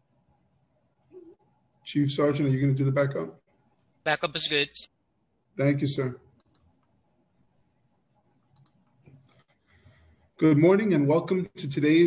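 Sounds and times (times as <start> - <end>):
faint clicks: 6.4 - 6.9, 8.5 - 9.6.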